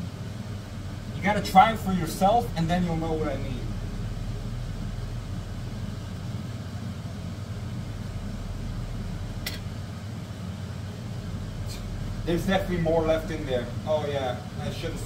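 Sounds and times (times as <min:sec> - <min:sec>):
extractor fan humming: 0:00.0 - 0:15.0.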